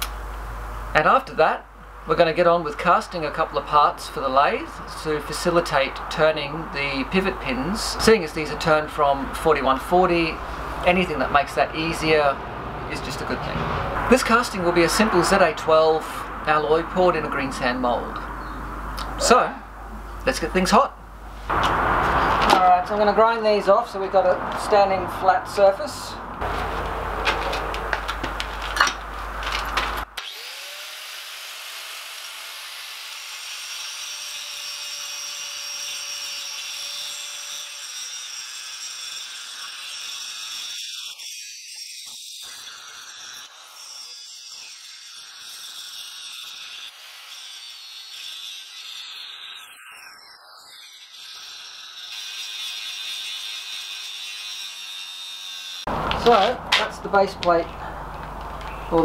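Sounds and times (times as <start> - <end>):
angle grinder grinding steel: 2.9 - 18.5, 21.5 - 59.0
knocks and rustles: 26.4 - 30.1.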